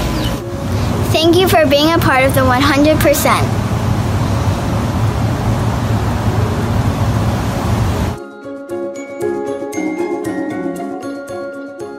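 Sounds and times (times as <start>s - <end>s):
outdoor hiss and rumble: 0.0s - 8.2s
glockenspiel tune: 8.2s - 11.9s.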